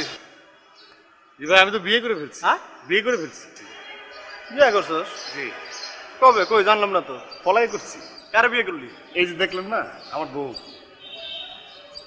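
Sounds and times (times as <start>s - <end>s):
faint background noise: 0.0s - 12.0s
man speaking: 6.2s - 10.7s.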